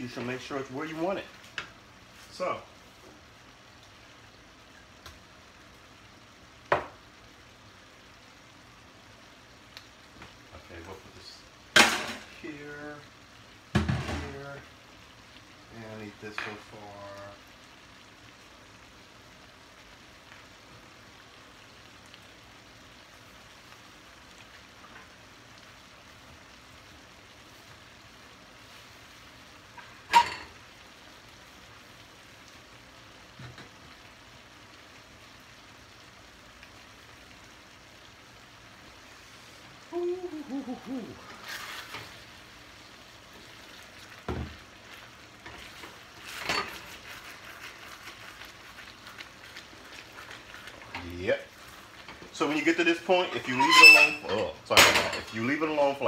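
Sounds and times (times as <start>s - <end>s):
food sizzling in a skillet: 0.0s - 56.0s
wooden spatula stirring pan: 43.3s - 54.6s.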